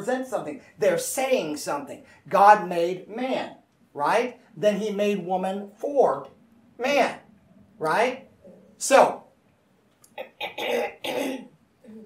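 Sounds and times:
man coughing: 10.4s - 11.6s.

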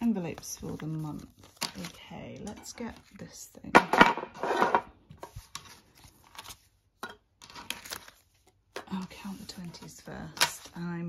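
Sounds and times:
banknotes rustling and crinkling: 0.0s - 3.6s, 4.4s - 11.0s.

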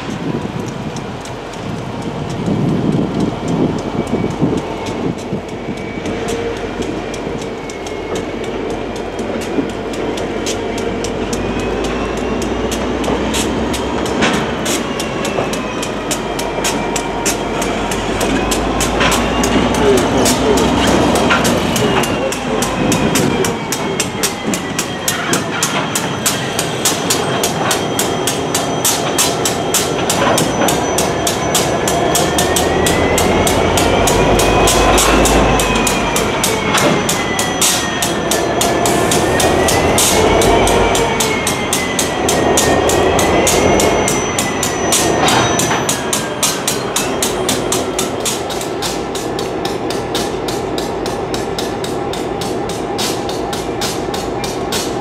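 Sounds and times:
diesel locomotive engines: 0.0s - 55.0s
train wheels clicking over rail joints: 0.0s - 55.0s
high wheel squeal: 3.3s - 55.0s.

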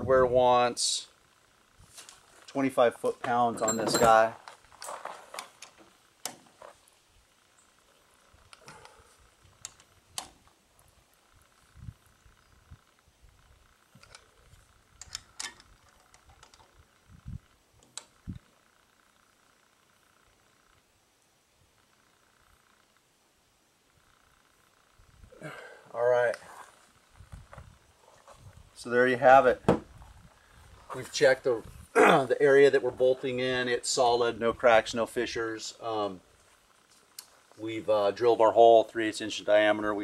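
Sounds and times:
faint steady tone: 0.0s - 40.0s.

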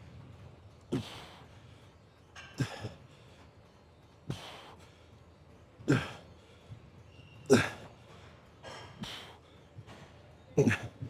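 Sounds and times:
man breathing hard: 4.3s - 5.2s.

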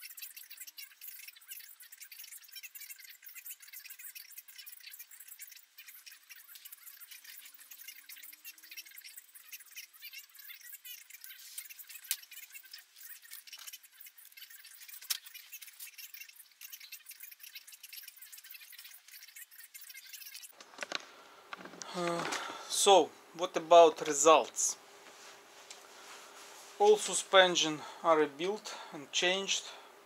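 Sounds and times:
small metal parts clicking and rattling: 0.0s - 21.8s.

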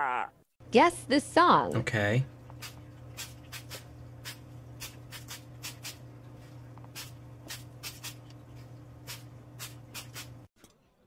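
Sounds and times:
steady low hum: 0.1s - 10.5s
spray bottle squirting: 2.6s - 6.0s, 6.9s - 8.3s, 9.0s - 10.5s.

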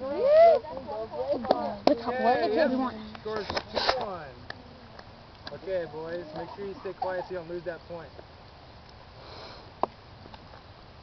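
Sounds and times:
short sniff: 9.2s - 9.7s.

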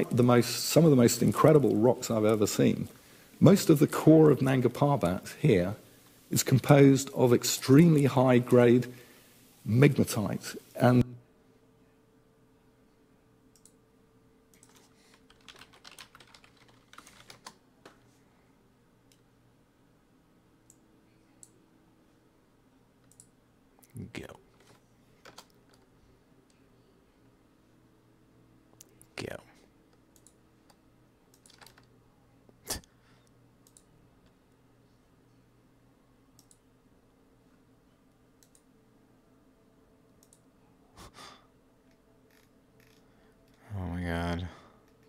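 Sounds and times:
low steady hum: 0.0s - 45.0s
computer mouse clicks: 13.5s - 13.8s, 14.5s - 18.0s, 23.0s - 23.3s, 29.9s - 31.9s, 33.6s - 33.9s, 36.4s - 36.6s, 38.4s - 38.7s, 40.2s - 40.4s.

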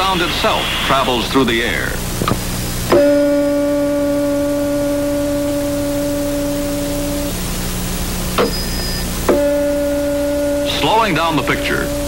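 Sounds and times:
low steady hum: 0.0s - 12.0s
tuning fork ringing: 2.9s - 7.5s, 8.4s - 12.0s.

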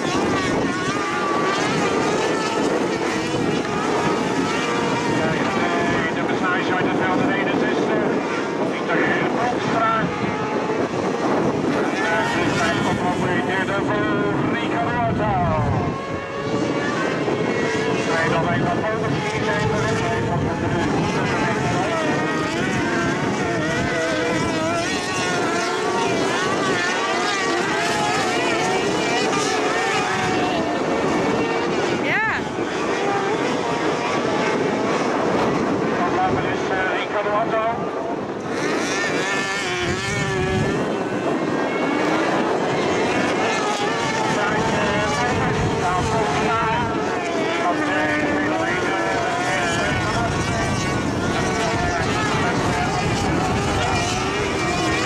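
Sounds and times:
buggy engines revving: 19.5s - 32.0s, 38.5s - 41.2s.

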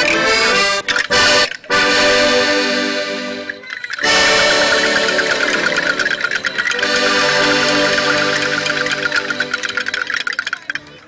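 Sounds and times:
held chords: 0.0s - 11.0s
fast drum strokes: 4.0s - 10.8s.

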